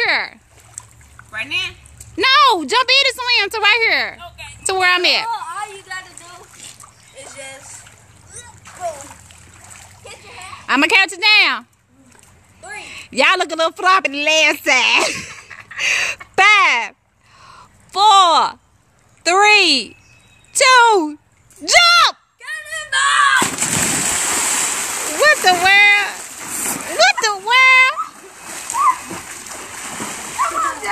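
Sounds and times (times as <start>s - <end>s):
pool water splashing: 0.0s - 30.9s
person yelling: 21.7s - 23.4s
big splash into pool: 23.3s - 27.2s, 27.9s - 30.9s.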